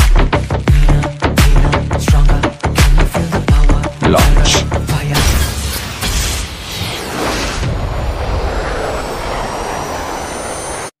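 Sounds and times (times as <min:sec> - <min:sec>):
thin high whines: 0:05.9 - 0:10.9.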